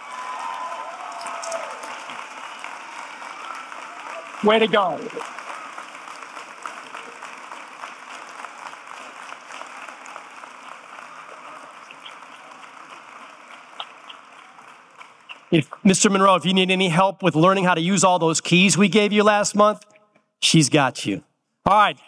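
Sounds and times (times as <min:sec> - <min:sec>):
audience applauding: 0:00.0 - 0:16.9.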